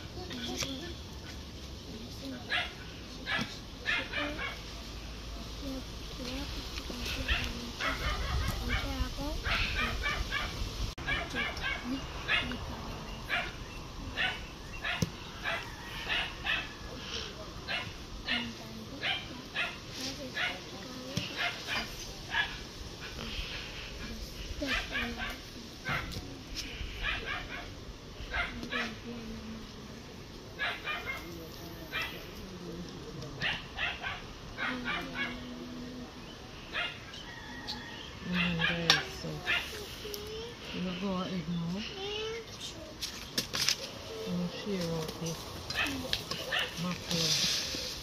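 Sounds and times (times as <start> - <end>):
dog barking in high yaps: 2.5 - 4.6, 7.3 - 12.6.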